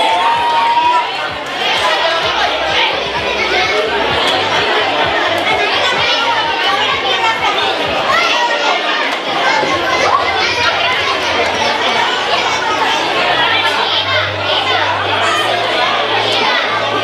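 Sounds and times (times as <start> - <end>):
crowd of children chattering: 0.0 - 17.0.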